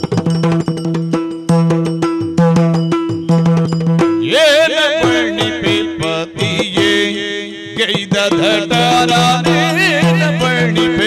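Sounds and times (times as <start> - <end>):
person singing: 4.2 - 11.0.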